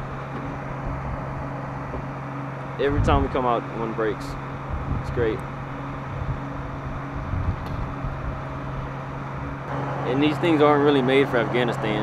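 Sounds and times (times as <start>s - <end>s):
diesel engine idling: 0.0s - 12.0s
wind on microphone: 4.7s - 5.4s, 6.0s - 9.6s.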